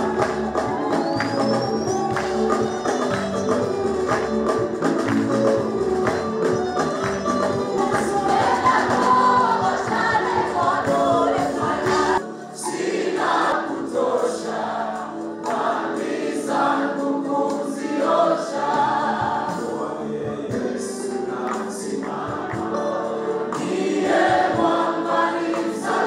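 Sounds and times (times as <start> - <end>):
bass and percussion: 0.0 - 12.2
choir singing gospel song: 0.0 - 26.0.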